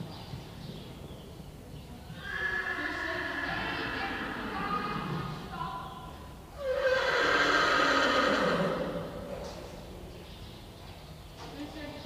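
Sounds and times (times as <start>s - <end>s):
horse whinnying: 2.2s - 5.3s, 6.6s - 9.2s.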